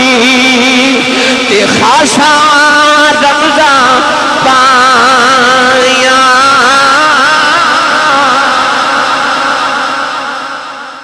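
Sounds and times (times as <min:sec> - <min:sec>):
echo: 0:00.0 - 0:11.0
man singing through loudspeaker: 0:00.0 - 0:11.0.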